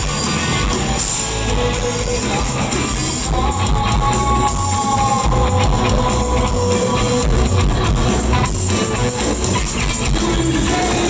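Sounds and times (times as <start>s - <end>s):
electric bass: 0.0s - 11.0s
live rock band playing: 0.0s - 11.0s.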